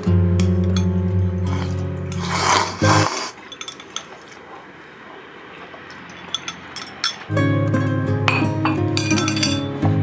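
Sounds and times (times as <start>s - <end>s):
instrumental music with bass: 0.0s - 3.1s, 7.3s - 10.0s
ceramic bowl clinking on dishes: 0.4s - 1.0s, 3.4s - 4.3s, 6.0s - 7.3s, 8.2s - 9.8s.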